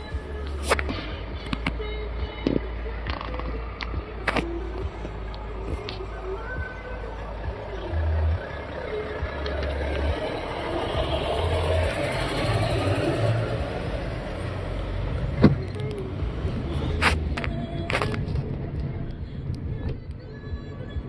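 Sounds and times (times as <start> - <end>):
lorry diesel engine passing: 0.0 - 17.4.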